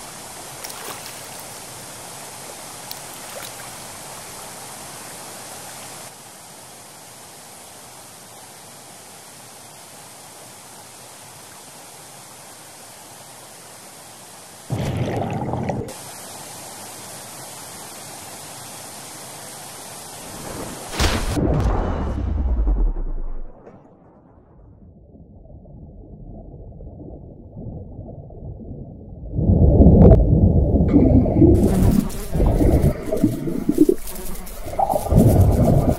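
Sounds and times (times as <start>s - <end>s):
stream rushing: 0.0s - 6.2s
water splash: 0.6s - 1.7s, 2.9s - 4.1s
underwater churning and bubbling: 14.7s - 16.0s, 24.9s - 35.9s
deep boom: 21.0s - 25.6s.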